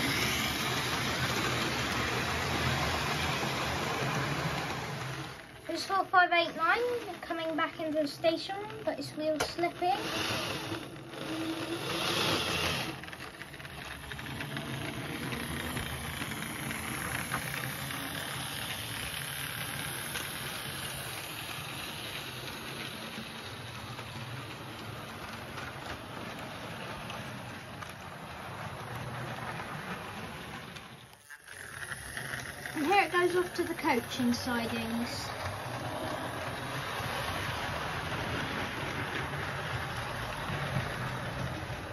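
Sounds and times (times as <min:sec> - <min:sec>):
wheels rattling on rails: 0:00.0 - 0:41.9
small electric motor humming: 0:09.8 - 0:24.0, 0:31.0 - 0:39.3.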